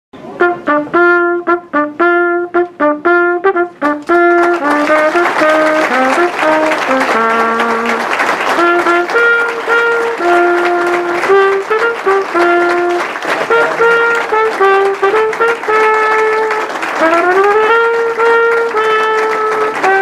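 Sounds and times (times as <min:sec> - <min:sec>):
brass music: 0:00.2 - 0:20.0
hand clapping: 0:03.8 - 0:20.0.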